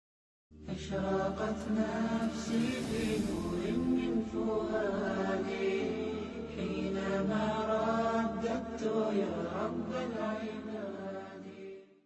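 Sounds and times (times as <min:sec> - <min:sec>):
low steady drone: 0:00.7 - 0:07.9
person chanting: 0:00.7 - 0:11.8.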